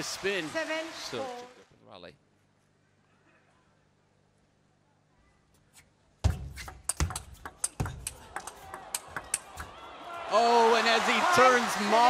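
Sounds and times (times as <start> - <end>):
table tennis ball clicking: 6.6 - 9.8.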